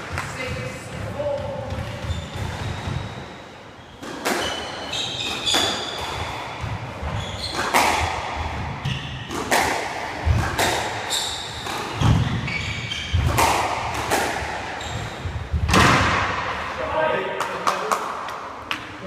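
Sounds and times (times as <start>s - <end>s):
ball hitting court walls: 4.0s - 16.6s
squash ball struck by rackets: 4.0s - 16.6s.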